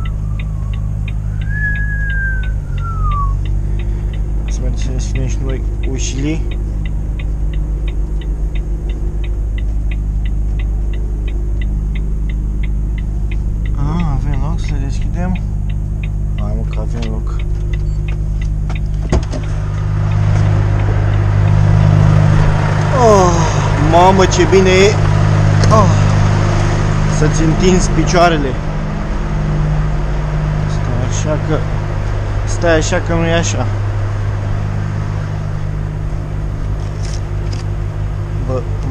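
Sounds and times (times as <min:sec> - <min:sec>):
rapid regular ticking: 0:00.0 - 0:21.6
diesel engine running: 0:00.0 - 0:38.9.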